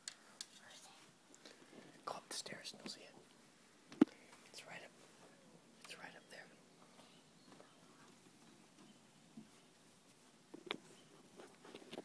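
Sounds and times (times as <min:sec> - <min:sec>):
soft whispering: 0:00.2 - 0:08.3.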